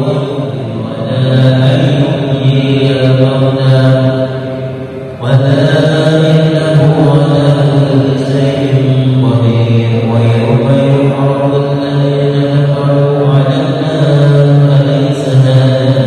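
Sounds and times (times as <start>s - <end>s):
man chanting recitation: 0.0s - 16.0s.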